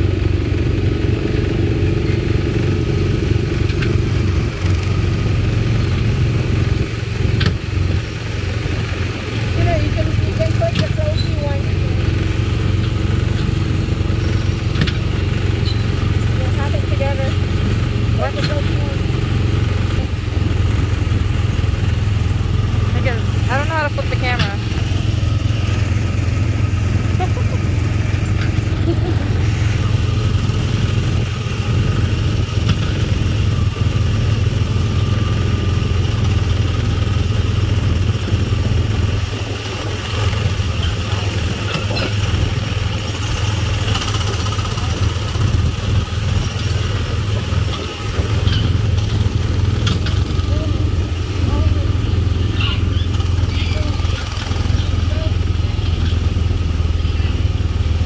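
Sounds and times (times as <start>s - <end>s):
small gasoline engine droning: 0.0s - 58.0s.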